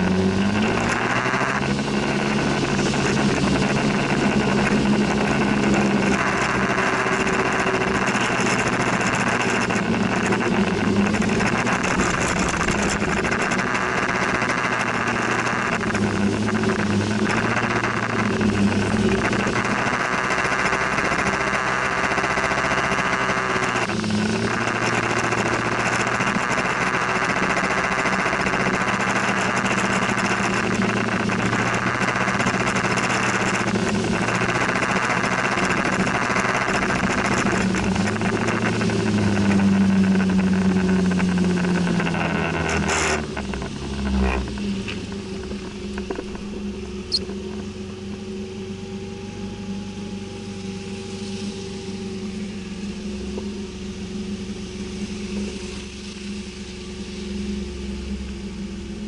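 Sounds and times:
motor scooter engine: 0.0s - 59.0s
wind and road noise: 0.0s - 59.0s.

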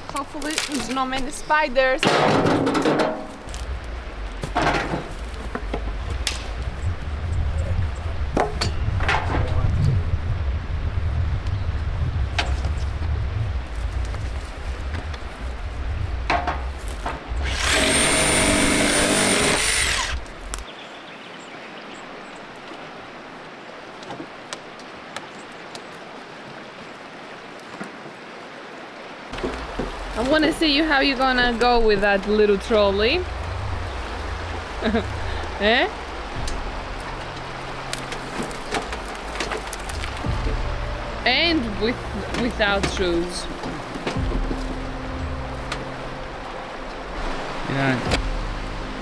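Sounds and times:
dry wood knocking and cracking: 0.1s - 1.4s, 2.0s - 6.8s, 8.3s - 9.6s, 16.2s - 20.7s, 29.3s - 32.4s, 36.4s - 40.6s, 42.1s - 44.9s
low rumble: 3.2s - 20.6s, 29.4s - 49.0s
loud rasping scrape: 17.4s - 20.2s.

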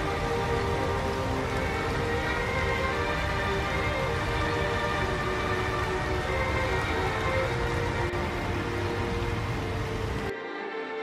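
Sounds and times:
background music: 0.0s - 11.0s
steady rain falling: 0.0s - 11.0s.

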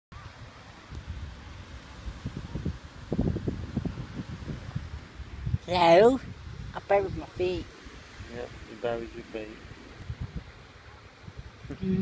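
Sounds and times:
wind buffeting microphone: 0.2s - 12.0s.

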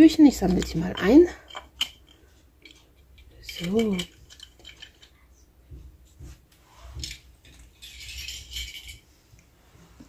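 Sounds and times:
plastic toy pieces clattering: 0.4s - 5.1s, 7.0s - 9.0s.

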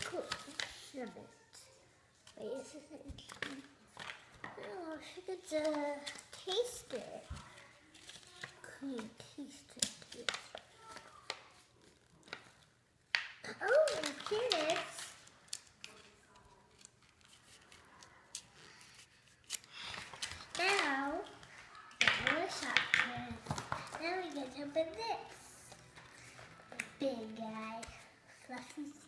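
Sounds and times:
girl talking: 0.0s - 3.8s, 4.6s - 7.8s, 8.4s - 11.3s, 13.4s - 15.2s, 20.4s - 25.8s, 26.7s - 29.0s
plastic packaging crinkling: 13.7s - 24.4s.

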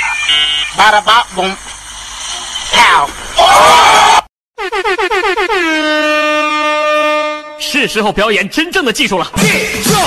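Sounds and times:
horn honking: 4.6s - 8.0s.

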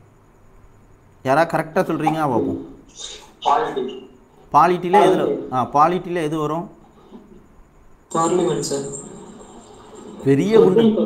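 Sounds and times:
faint small noises: 0.0s - 11.0s.

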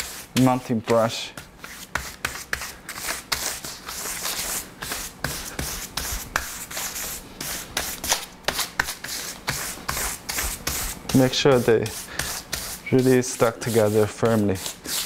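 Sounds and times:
brush scrubbing over paper: 0.0s - 15.0s.

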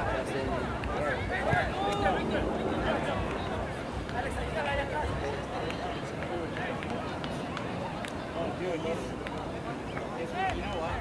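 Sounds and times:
people talking and calling out: 0.0s - 11.0s.

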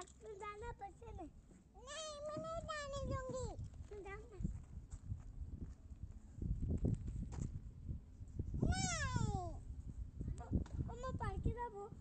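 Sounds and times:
young child's vocal sound: 0.0s - 4.6s, 8.6s - 9.6s.

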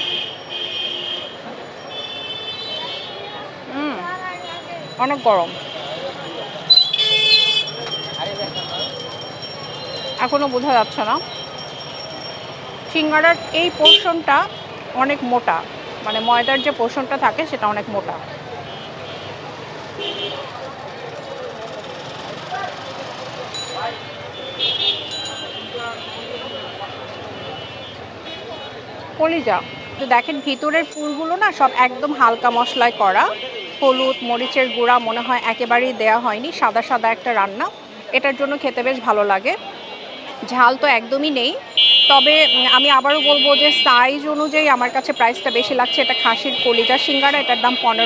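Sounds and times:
crowd chattering: 0.0s - 48.0s
street noise: 0.0s - 48.0s
traffic passing: 0.0s - 48.0s.

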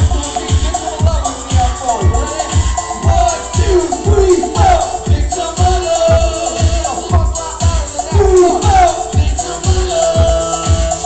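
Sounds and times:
electronic dance-pop music: 0.0s - 11.0s
kick drum: 0.0s - 11.0s.

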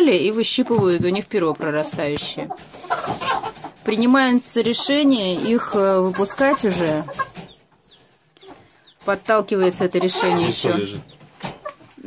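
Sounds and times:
chickens clucking softly: 0.8s - 12.0s
high-pitched chicken calls: 9.9s - 10.8s.

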